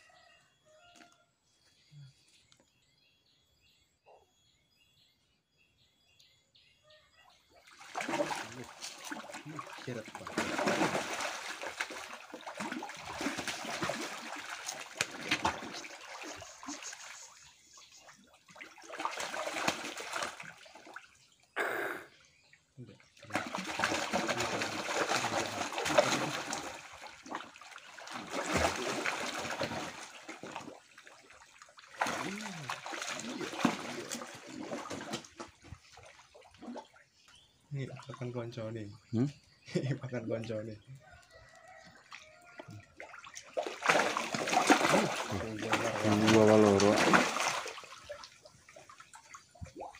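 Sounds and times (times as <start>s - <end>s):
fish thrashing and splashing in water: 7.6s - 17.4s, 18.2s - 21.2s, 23.2s - 37.2s, 41.1s - 49.9s.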